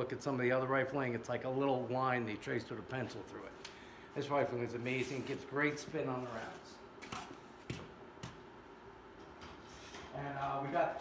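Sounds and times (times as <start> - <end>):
faint rubbing and shuffling: 4.8 - 6.7.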